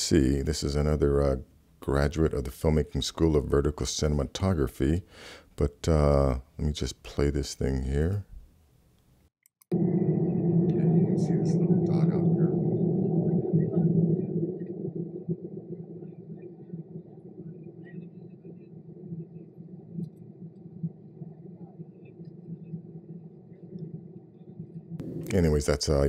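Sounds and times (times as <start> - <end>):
airliner engines and airflow rumble: 9.7 - 22.7.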